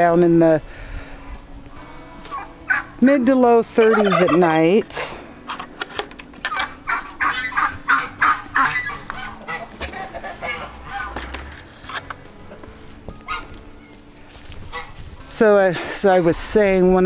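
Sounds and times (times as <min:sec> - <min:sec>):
poultry calling: 0:01.2 - 0:03.0, 0:03.8 - 0:04.8, 0:06.5 - 0:15.3.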